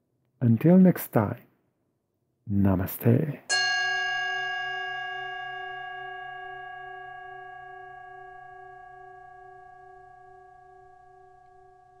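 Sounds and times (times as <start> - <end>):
sustained bell-like tone: 3.5 - 12.0.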